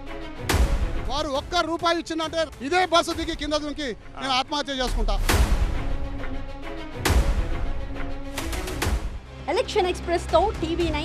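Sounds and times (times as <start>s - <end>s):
background music: 0.0s - 11.0s
man's voice: 1.0s - 5.4s.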